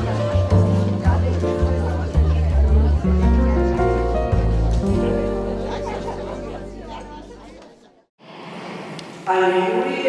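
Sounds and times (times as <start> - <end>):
background music: 0.0 - 7.6
group chatter: 0.0 - 9.0.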